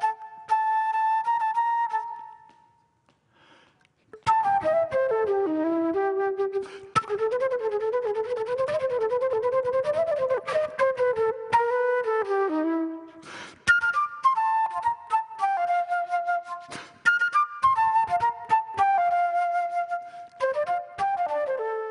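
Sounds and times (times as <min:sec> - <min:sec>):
solo flute melody: 0:00.0 - 0:03.0, 0:04.1 - 0:21.9
flute player breathing: 0:02.1 - 0:04.3, 0:06.4 - 0:07.2, 0:10.3 - 0:10.9, 0:12.9 - 0:14.0, 0:16.4 - 0:17.4, 0:19.9 - 0:20.5.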